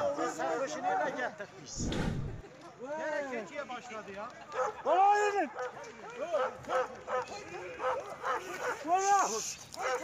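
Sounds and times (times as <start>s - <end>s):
dog barking: 4.6s - 8.9s, 9.8s - 10.0s.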